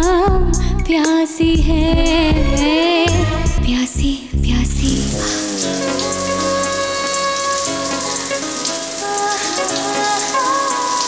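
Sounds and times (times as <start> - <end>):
slow instrumental music: 0.0 - 11.0
shower water spraying: 4.8 - 11.0.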